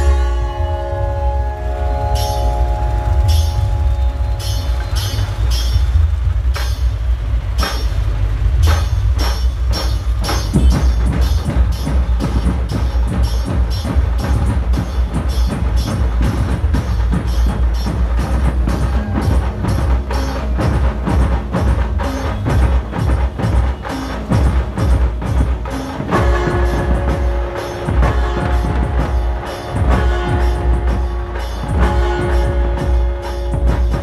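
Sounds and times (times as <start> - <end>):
heavy bass: 0.0 - 34.0
fast dense drumming: 2.2 - 34.0.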